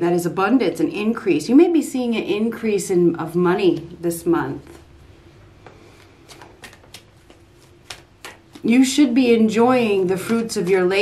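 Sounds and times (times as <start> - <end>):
tarot cards clicking and rustling: 5.7 - 8.8.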